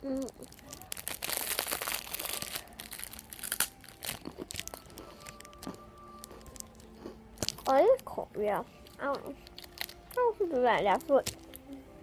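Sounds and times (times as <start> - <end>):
plastic wrapper crinkling: 0.0 - 8.2, 8.8 - 11.8.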